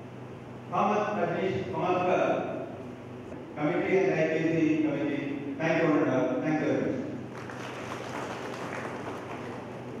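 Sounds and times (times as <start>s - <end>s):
audience applauding: 7.3s - 10.0s.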